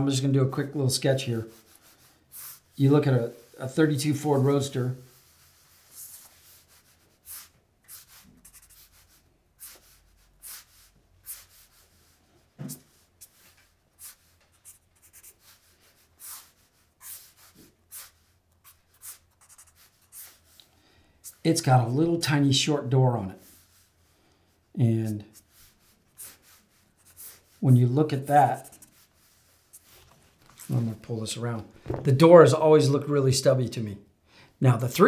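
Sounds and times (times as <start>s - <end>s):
pen scratching on paper: 5.1s - 20.6s, 25.3s - 30.1s.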